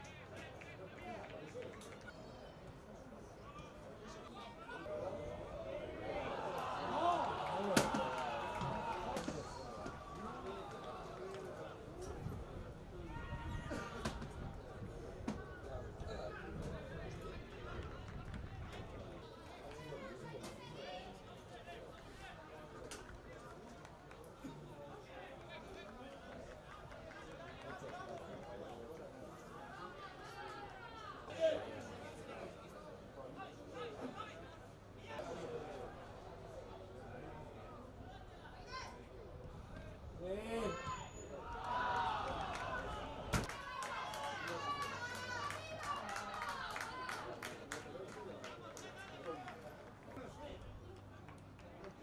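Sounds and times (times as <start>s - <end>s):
players shouting and calling: 0.0s - 23.4s, 37.4s - 50.7s
players shouting: 4.8s - 11.2s.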